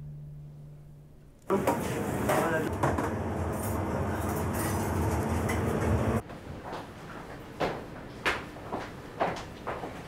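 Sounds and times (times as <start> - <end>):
extractor fans rumbling: 1.5 - 6.2.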